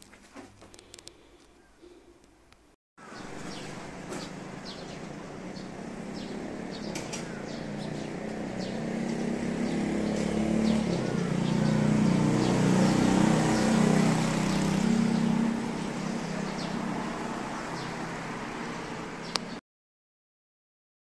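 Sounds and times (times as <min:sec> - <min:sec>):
vehicle engine running: 0:03.0 - 0:18.3
birds chirping faintly: 0:03.0 - 0:19.6.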